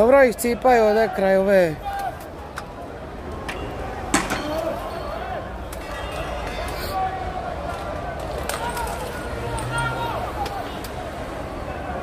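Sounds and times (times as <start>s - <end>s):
men shouting: 6.9s - 10.8s.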